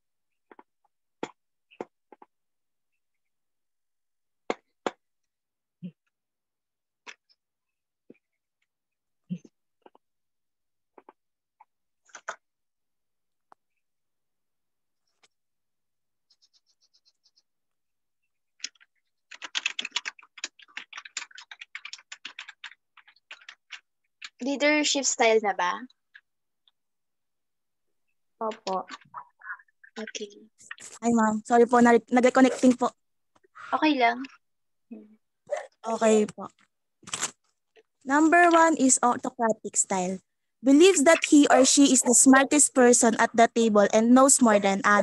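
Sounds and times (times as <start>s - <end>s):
computer mouse clicking: 18.6s - 24.4s.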